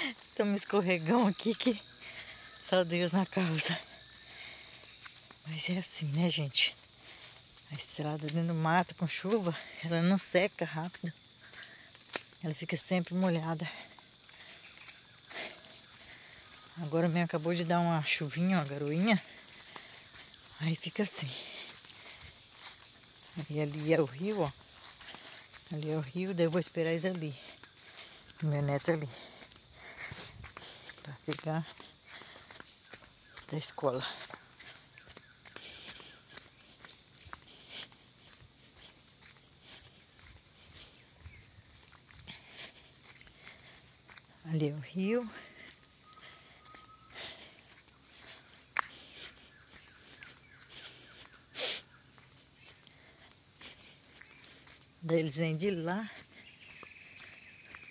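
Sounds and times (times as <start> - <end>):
footsteps on wet dirt: 0.0 - 57.9
insects trilling: 0.0 - 57.9.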